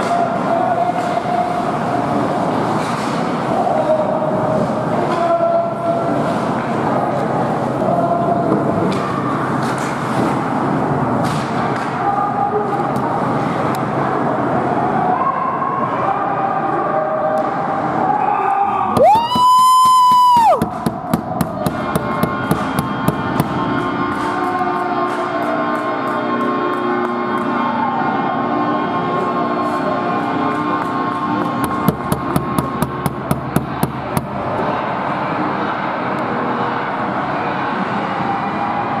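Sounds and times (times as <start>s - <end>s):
crowd noise: 0.0s - 39.0s
sharp knocks: 19.0s - 23.6s, 31.6s - 34.3s.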